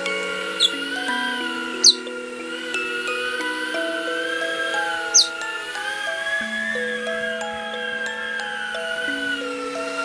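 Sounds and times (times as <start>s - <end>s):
bird chirp: 0.0s - 8.4s
background music: 0.0s - 10.0s
drone motors whining: 0.0s - 10.0s.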